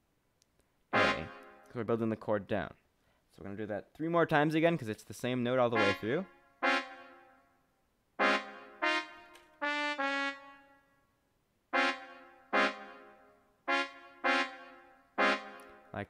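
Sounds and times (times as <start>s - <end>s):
sampled trumpet notes: 0.9s - 1.9s, 5.7s - 7.6s, 8.2s - 11.1s, 11.7s - 16.0s.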